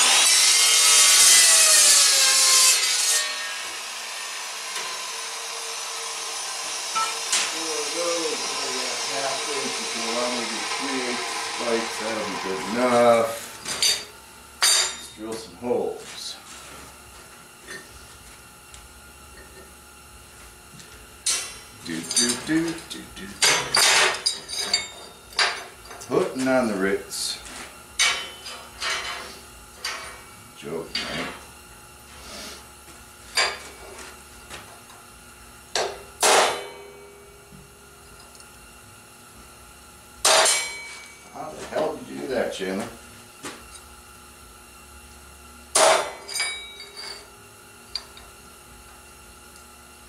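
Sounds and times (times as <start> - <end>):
steel bars clanking on worktable: 7.0 - 7.5, 13.7 - 15.2, 23.4 - 26.1, 40.2 - 41.1, 45.8 - 47.3.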